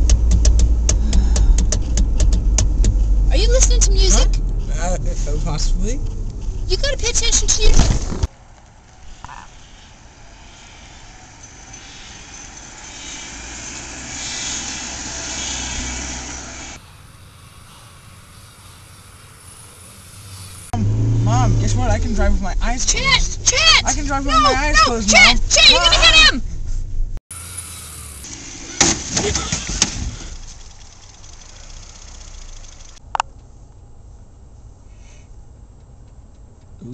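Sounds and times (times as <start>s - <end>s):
car rumble and hiss: 0.0s - 25.7s, 26.4s - 36.9s.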